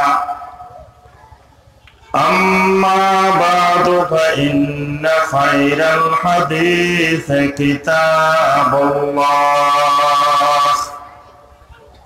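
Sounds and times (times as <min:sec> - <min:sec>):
man chanting recitation: 0:02.1 - 0:11.2.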